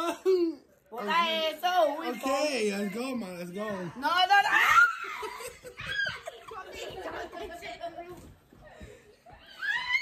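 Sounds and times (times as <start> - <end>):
people laughing and snickering: 4.8 - 7.8.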